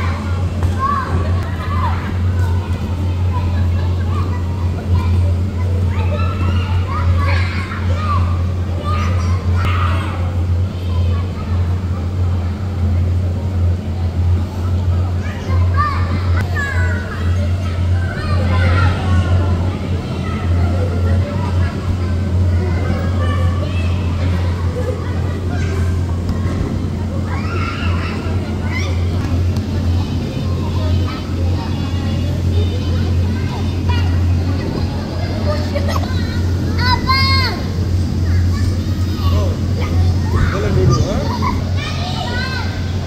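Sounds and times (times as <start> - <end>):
air blower humming: 0.0 - 43.0
children's voices and squeals: 0.0 - 43.0.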